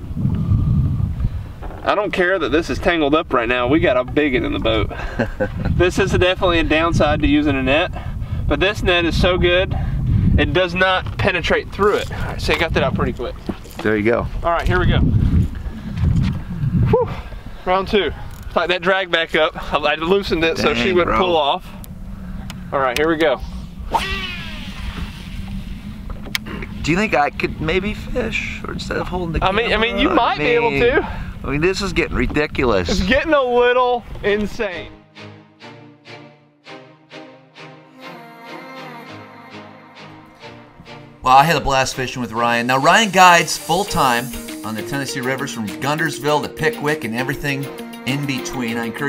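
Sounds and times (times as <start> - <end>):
low rumble on microphone: 0.0 - 35.0
steady low hum: 15.3 - 33.4
man speaking: 18.7 - 21.8, 26.5 - 35.0, 41.2 - 49.0
fishing reel spool whirring: 23.6 - 26.8.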